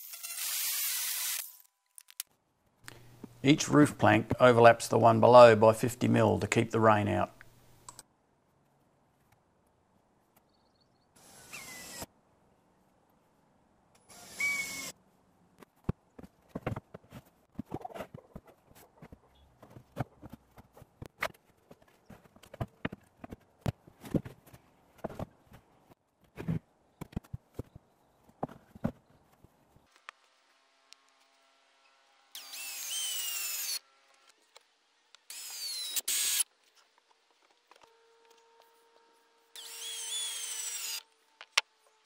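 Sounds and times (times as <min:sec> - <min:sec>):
cordless drill driving screws: 0:11.2 - 0:12.1, 0:14.0 - 0:14.9, 0:32.3 - 0:33.8, 0:35.3 - 0:36.4, 0:39.6 - 0:41.1.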